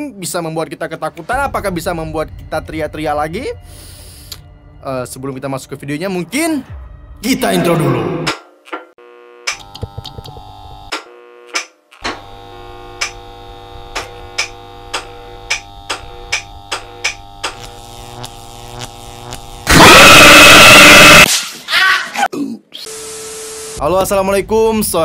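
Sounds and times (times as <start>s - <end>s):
harsh glitch static burst: 18.8s - 21.3s.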